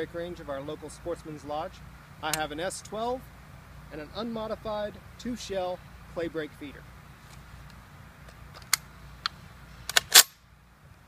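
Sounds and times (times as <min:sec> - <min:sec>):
shotgun metallic clicks: 0:07.7 - 0:10.4.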